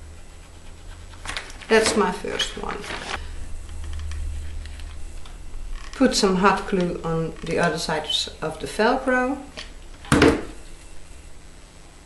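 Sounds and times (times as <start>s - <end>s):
knock on work table: 10.1s - 10.5s.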